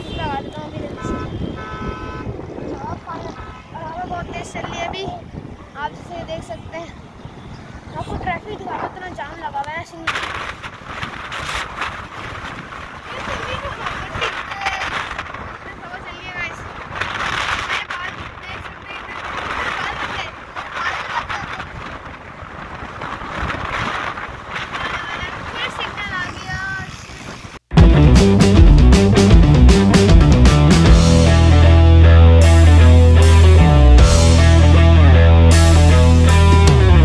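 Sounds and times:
wind rumbling on microphone: 0:00.0 - 0:27.7
children's voices and laughter: 0:02.8 - 0:07.0, 0:08.0 - 0:10.1, 0:13.0 - 0:16.6, 0:17.8 - 0:21.8
loud music: 0:27.7 - 0:37.0.

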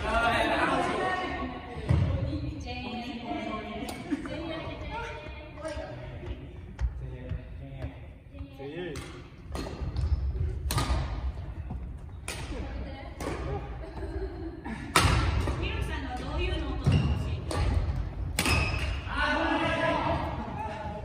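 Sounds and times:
rackets striking shuttlecocks: 0:08.9 - 0:11.3, 0:12.2 - 0:13.5, 0:14.9 - 0:19.1.

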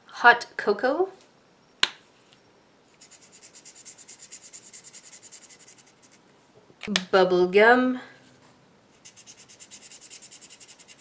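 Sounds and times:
marker scribbling on paper: 0:03.0 - 0:06.2, 0:09.0 - 0:11.0.

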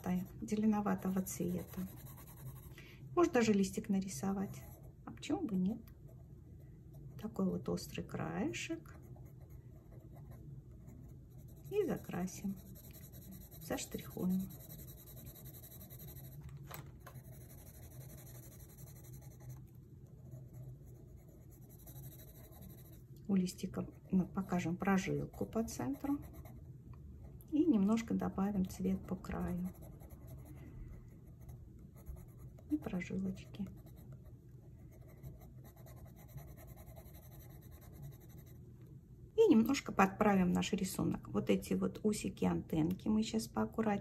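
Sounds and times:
coloured pencil scratching on paper: 0:00.0 - 0:02.7, 0:04.0 - 0:05.0, 0:08.9 - 0:23.0, 0:23.8 - 0:26.6, 0:27.8 - 0:38.6.

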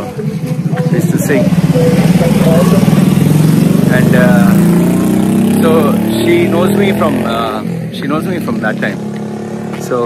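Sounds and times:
motorbike engine passing: 0:00.0 - 0:10.0.

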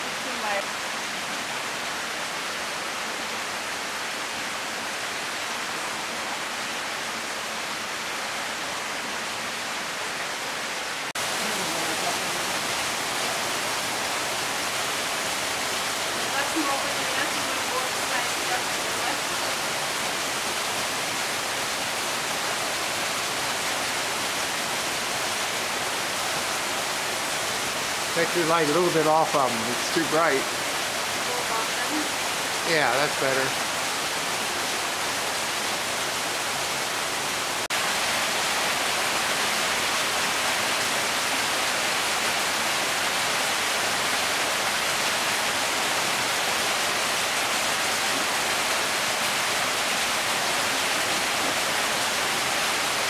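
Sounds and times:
running water rushing: 0:00.0 - 0:53.0.

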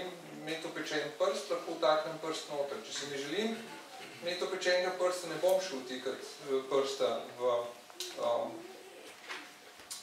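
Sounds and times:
man speaking: 0:00.0 - 0:08.6.

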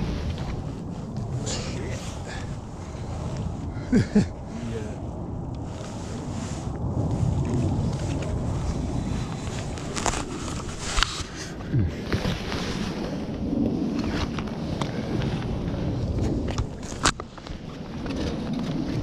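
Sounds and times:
rustling: 0:00.0 - 0:13.3
wind rumble on microphone: 0:00.0 - 0:19.0.

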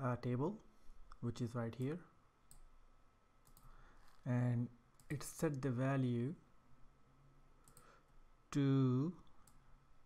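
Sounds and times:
computer mouse clicks: 0:02.5 - 0:02.7, 0:03.4 - 0:04.2, 0:07.6 - 0:07.9.

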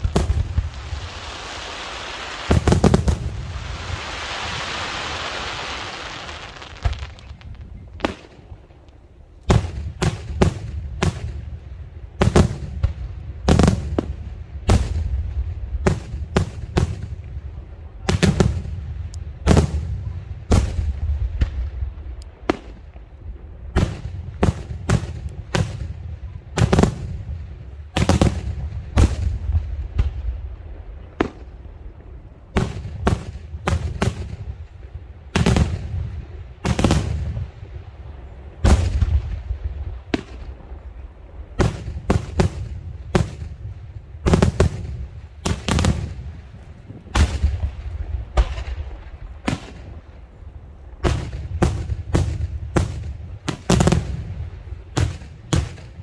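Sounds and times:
fireworks bursting with rumble: 0:00.0 - 0:56.0.

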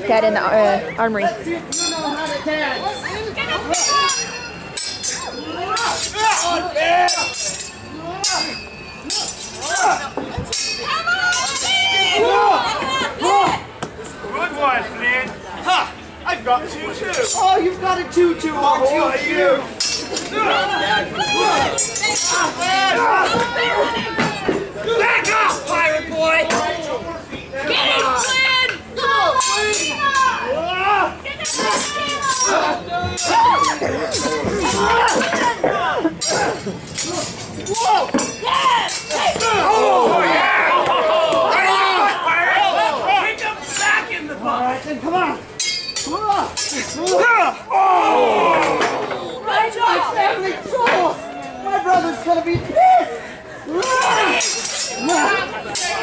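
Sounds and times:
voices shouting: 0:00.8 - 0:56.0
metal swords clashing: 0:03.7 - 0:11.9, 0:19.8 - 0:20.4, 0:21.4 - 0:23.4, 0:29.4 - 0:30.4, 0:31.4 - 0:35.6, 0:36.2 - 0:39.9, 0:45.6 - 0:47.6, 0:53.8 - 0:56.0.

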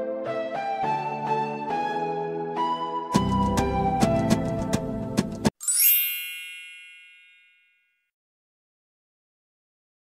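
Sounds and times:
background music with plucked notes: 0:00.0 - 0:06.5
bright upward sweeping chime: 0:05.6 - 0:07.9.

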